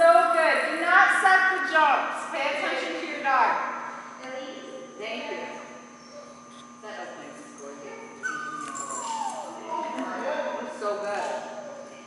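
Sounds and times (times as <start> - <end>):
dog whining: 8.1 - 10.7.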